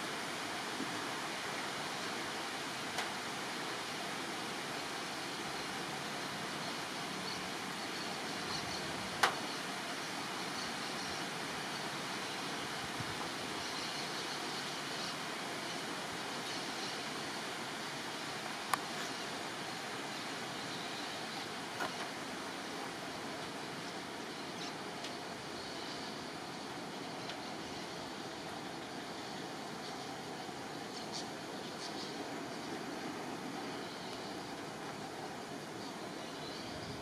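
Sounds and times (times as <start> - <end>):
outdoor background hiss: 0.0 - 37.0
faint click: 9.2 - 9.5, 18.7 - 19.2.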